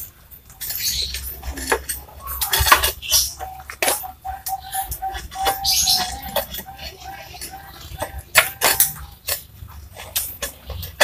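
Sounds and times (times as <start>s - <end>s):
ceramic tiles clinking and scraping: 0.5s - 11.0s.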